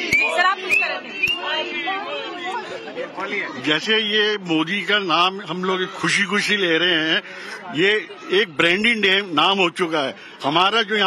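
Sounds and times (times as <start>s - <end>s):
crowd of overlapping voices: 0.0s - 11.0s.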